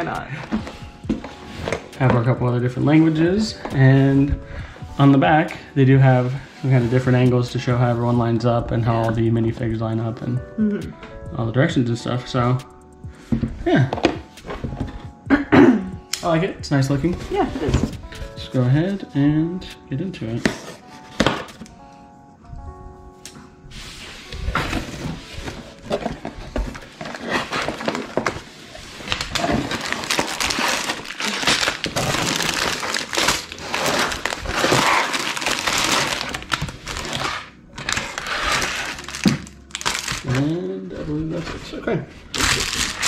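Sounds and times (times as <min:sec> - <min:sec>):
soft background music: 0:00.0 - 0:43.0
plastic bags rustling: 0:24.2 - 0:43.0
cardboard box crinkling: 0:24.5 - 0:40.5, 0:42.3 - 0:43.0.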